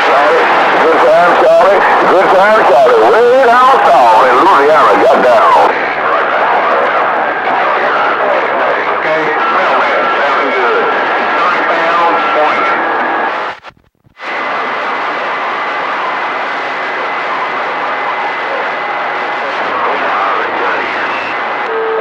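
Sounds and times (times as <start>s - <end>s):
faint garbled voices: 0.0s - 13.5s
radio static hiss: 0.0s - 22.0s.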